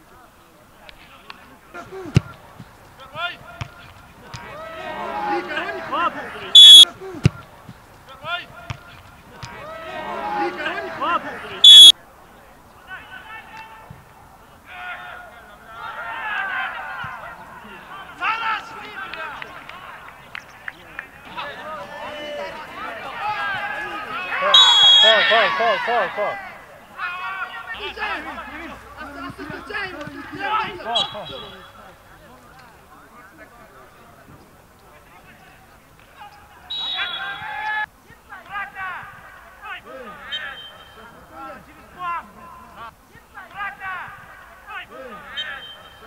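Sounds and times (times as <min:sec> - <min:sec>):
men shouting: 0:04.4 - 0:07.2, 0:09.5 - 0:11.7, 0:21.3 - 0:31.6
sharp whistle blast: 0:06.6 - 0:06.8, 0:11.6 - 0:11.9, 0:24.6 - 0:25.3, 0:36.7 - 0:37.4.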